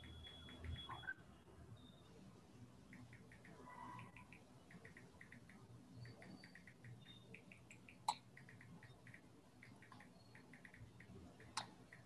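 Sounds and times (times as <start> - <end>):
faint high-pitched chirps: 0.0 - 1.2, 2.8 - 12.0.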